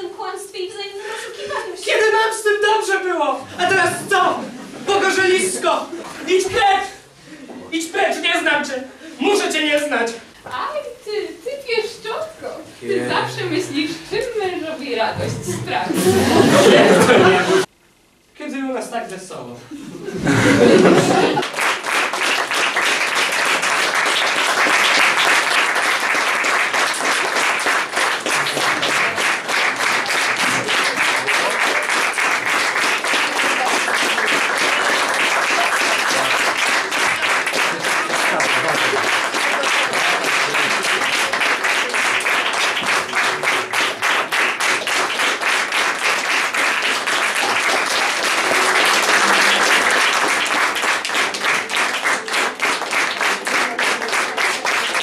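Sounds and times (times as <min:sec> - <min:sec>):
audience applauding: 0:03.5 - 0:06.8, 0:16.0 - 0:17.7, 0:20.3 - 0:55.0.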